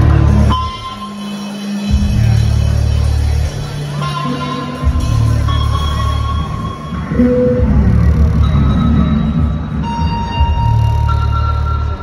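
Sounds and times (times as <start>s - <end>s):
sustained guitar tones: 0.0s - 12.0s.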